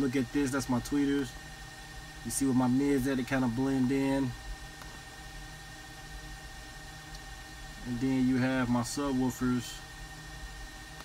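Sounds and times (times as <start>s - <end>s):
background hum and hiss: 0.0s - 11.0s.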